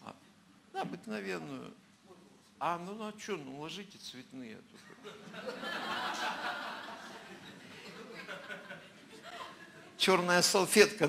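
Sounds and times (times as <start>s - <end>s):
audience murmuring and chuckling: 4.8s - 10.0s.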